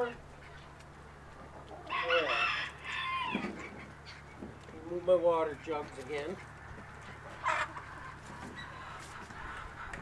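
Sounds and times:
rooster crowing: 1.9 - 3.5.

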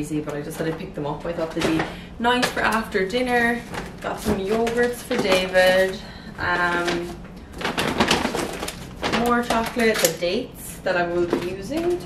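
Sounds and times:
grocery bags rustling: 0.0 - 12.0.

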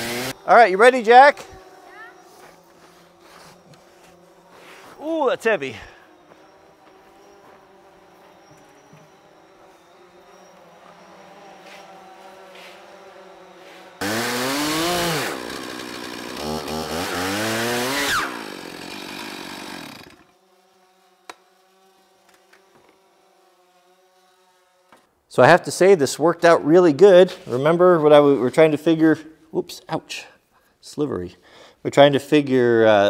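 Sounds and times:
chainsaw cutting wood: 0.0 - 25.1.

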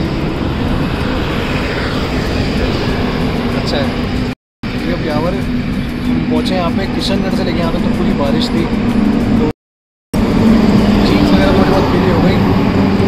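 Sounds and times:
highway traffic passing: 0.0 - 9.5, 10.2 - 13.0
low hum: 0.0 - 9.5
wind buffeting microphone: 0.0 - 9.5.

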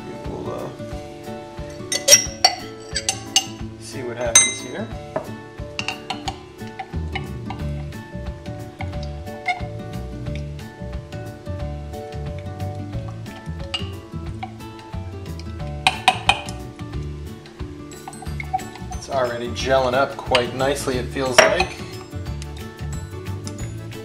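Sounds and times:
background music with bass line: 0.0 - 24.0
metal straw clinking against glass mug: 1.8 - 3.6, 5.8 - 7.7, 17.9 - 19.1.

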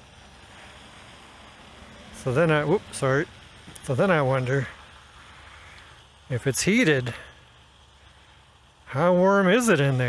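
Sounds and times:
low rumble with soft hiss: 0.0 - 10.0.

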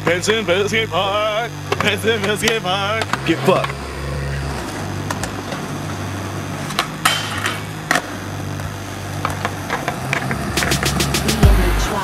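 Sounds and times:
low hum: 0.0 - 12.0
skateboard wheels rolling on concrete: 1.2 - 12.0
skateboard clacks: 4.5 - 12.0.

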